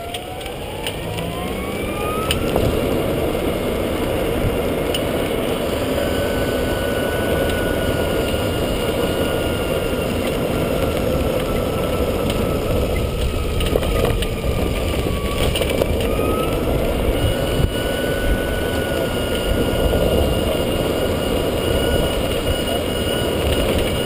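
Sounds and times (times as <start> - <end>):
golf cart drive whine: 0.0 - 24.0
tyre and wind noise: 0.0 - 24.0.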